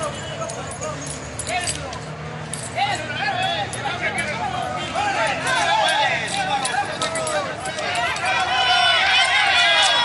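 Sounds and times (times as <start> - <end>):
people talking in raised voices: 0.0 - 10.0.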